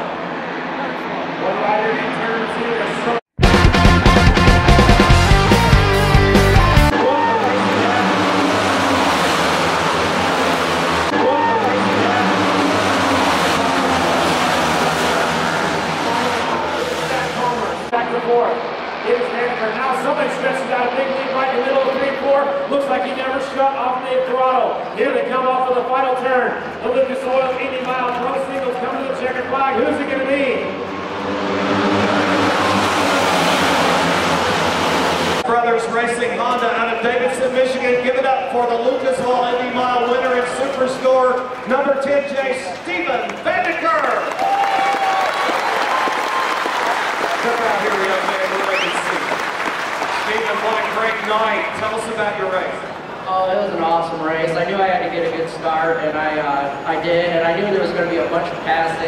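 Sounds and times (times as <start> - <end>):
music: 3.4 - 7.0
racing motorcycles passing: 4.2 - 24.0, 26.6 - 35.5, 37.2 - 53.3.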